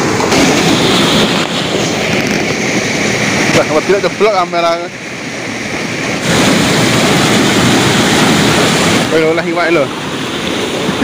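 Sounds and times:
water rushing through sluice gate: 0:00.0 - 0:11.0.

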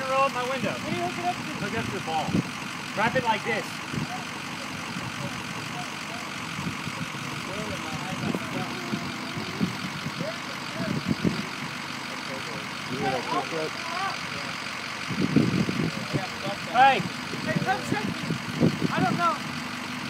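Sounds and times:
diesel engine idling: 0:00.0 - 0:20.0.

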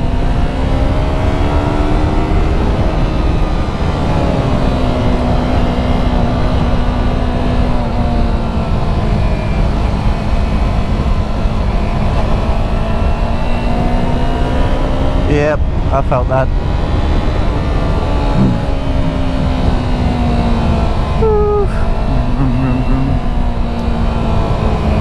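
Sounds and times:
motorcycle engine cruising: 0:00.0 - 0:25.0.

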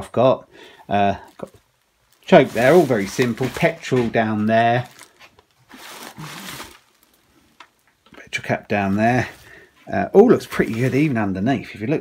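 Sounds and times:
bubble wrap crinkling: 0:01.0 - 0:08.0, 0:08.7 - 0:11.3.

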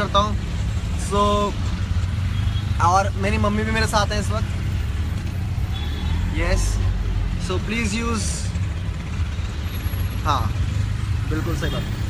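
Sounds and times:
auto-rickshaw engine rumble: 0:00.0 - 0:12.0.

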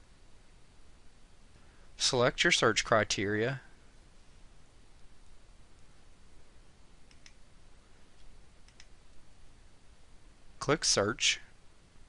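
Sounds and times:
computer mouse clicks: 0:07.1 - 0:07.4, 0:08.2 - 0:09.0.

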